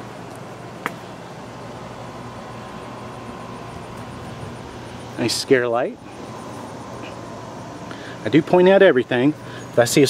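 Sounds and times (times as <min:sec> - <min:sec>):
outdoor hum and hiss: 0:00.0 - 0:10.0.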